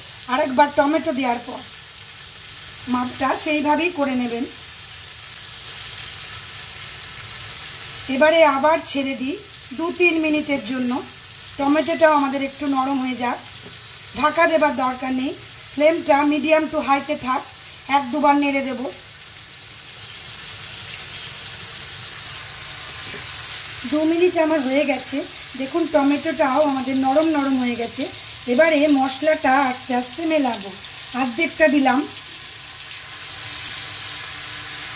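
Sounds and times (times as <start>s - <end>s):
vegetables sizzling in oil: 0.0s - 34.9s.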